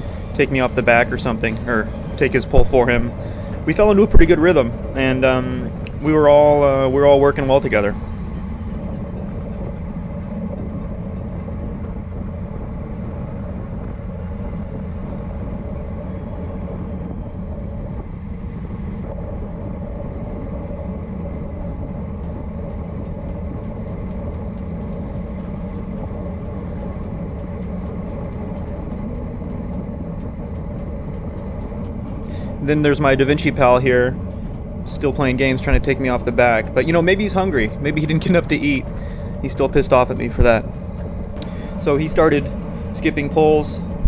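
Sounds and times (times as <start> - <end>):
wind rush on microphone: 0.0 - 44.0.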